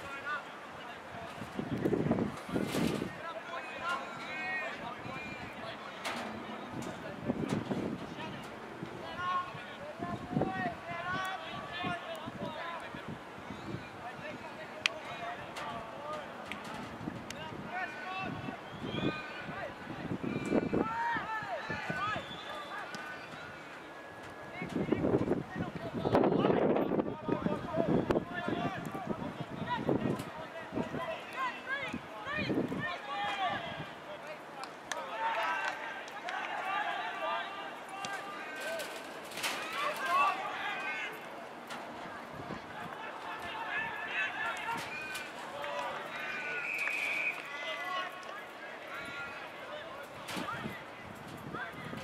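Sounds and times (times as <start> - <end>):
people shouting outdoors: 8.1 - 13.0, 17.4 - 23.7, 25.4 - 41.4, 42.0 - 50.9.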